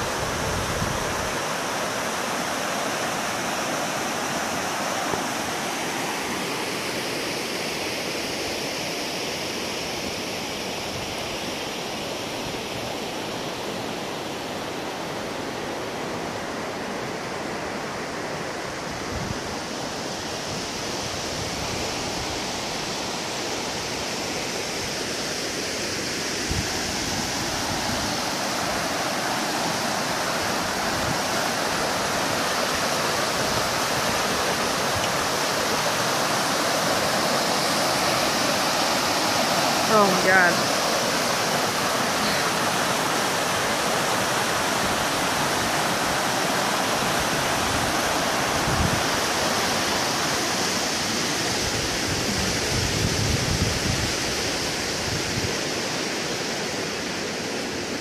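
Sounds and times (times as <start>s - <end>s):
river rushing over rocks: 0.0s - 58.0s.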